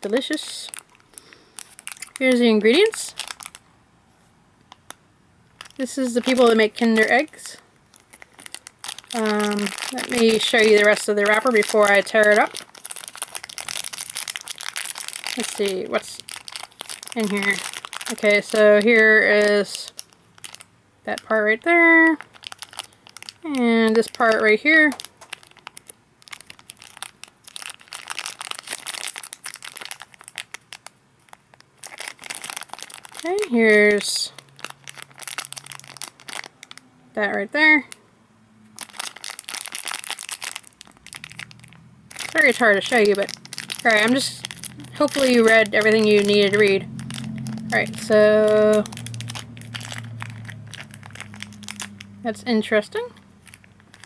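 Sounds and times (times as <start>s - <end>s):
plastic wrapper crinkling: 0.0s - 3.7s, 4.6s - 38.0s, 38.7s - 54.0s.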